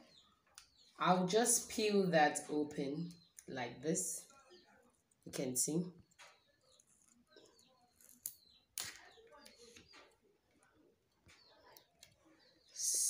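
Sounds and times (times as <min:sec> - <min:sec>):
faint bird chirps: 0:02.3 - 0:13.0.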